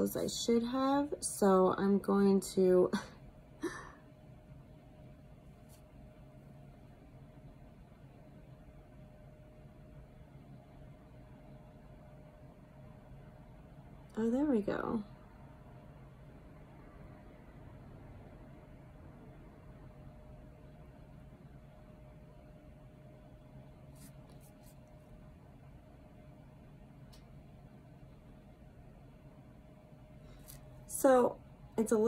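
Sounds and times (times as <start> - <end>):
faint steady hum: 0.0 - 32.0
soft faint clicks: 27.0 - 27.4.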